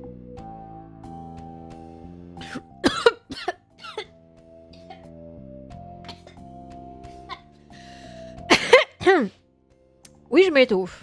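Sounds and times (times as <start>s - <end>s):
woman coughing: 2.4s - 4.1s, 6.1s - 6.4s, 7.2s - 7.5s, 8.5s - 9.3s.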